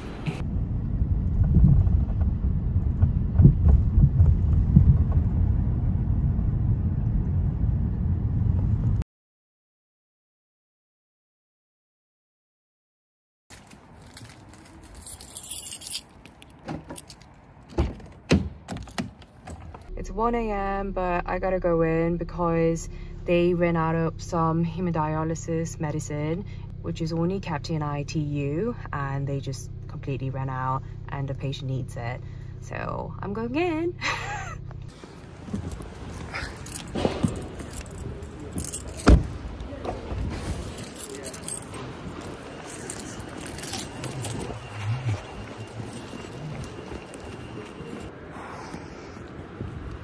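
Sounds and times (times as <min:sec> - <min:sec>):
keys jangling: 0:14.0 - 0:17.4, 0:35.5 - 0:48.1.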